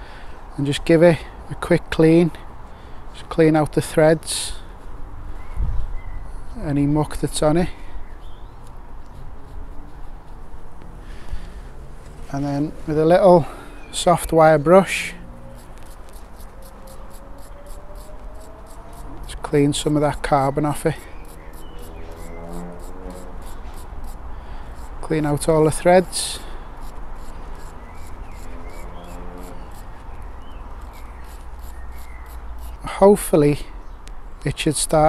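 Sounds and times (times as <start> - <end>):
wire brush scratching metal: 14.3 - 30.1, 30.8 - 32.9.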